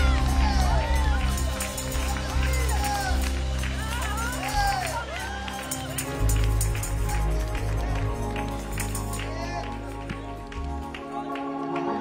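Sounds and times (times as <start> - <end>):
tambourine: 0.0 - 9.5
bass and keyboard chords: 0.0 - 12.0
congregation clapping: 0.0 - 12.0.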